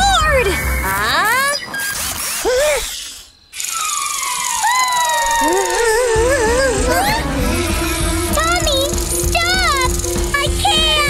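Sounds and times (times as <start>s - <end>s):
falling whistle-like tone: 3.6s - 6.0s
cartoon soundtrack music: 4.6s - 11.0s
bass line: 5.9s - 11.0s.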